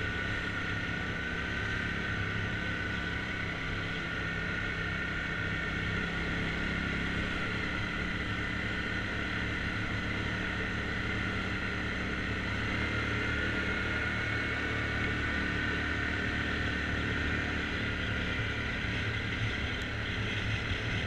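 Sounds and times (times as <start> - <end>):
atv engine running: 0.0 - 21.0.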